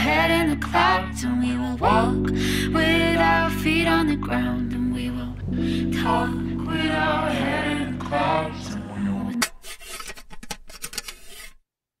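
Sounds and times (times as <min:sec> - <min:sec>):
small scratching and rubbing clicks: 0:09.4 - 0:11.6.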